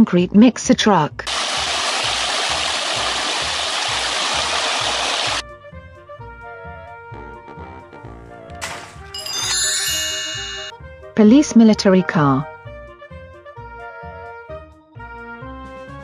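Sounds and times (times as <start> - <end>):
concrete pouring down chute: 1.3 - 5.4
background music with beat: 5.4 - 10.6
bright chimes: 9.2 - 10.7.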